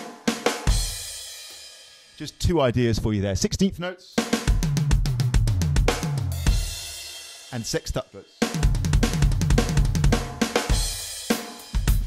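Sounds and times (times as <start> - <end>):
electronic drum fill: 8.5 - 11.1.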